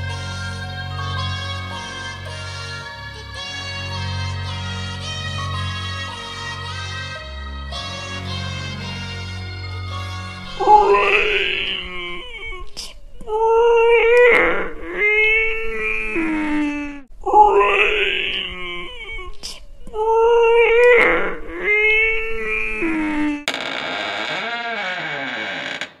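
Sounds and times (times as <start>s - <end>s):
eerie moaning wailing voices: 10.6s - 12.6s.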